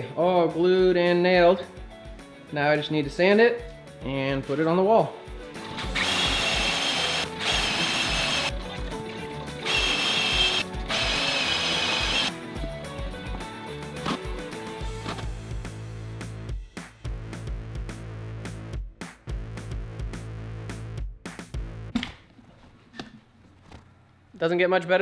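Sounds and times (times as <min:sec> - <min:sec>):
background music with steady beat: 0:00.0 - 0:22.3
power tool whining: 0:05.7 - 0:08.5, 0:09.6 - 0:12.3.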